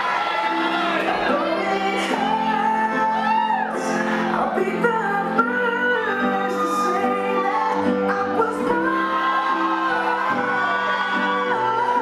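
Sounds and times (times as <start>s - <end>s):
song with singing voice: 0.0s - 12.0s.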